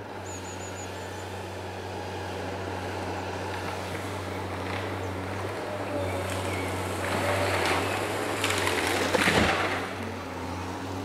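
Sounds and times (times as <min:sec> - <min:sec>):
diesel engine droning: 0:00.0 - 0:11.0
wood crackling and snapping: 0:07.0 - 0:10.0.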